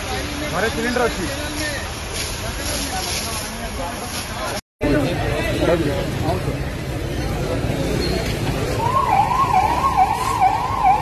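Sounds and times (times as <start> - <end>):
low street noise: 0.0 - 11.0
ambulance siren yelping: 8.8 - 11.0.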